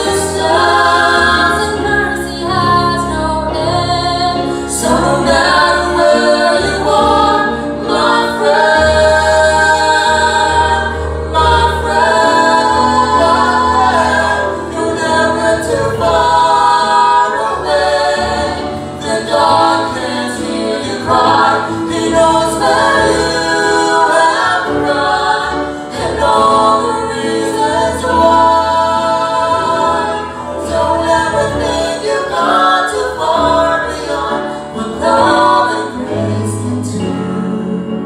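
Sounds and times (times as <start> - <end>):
vocal trio singing gospel harmony: 0.0 - 38.0.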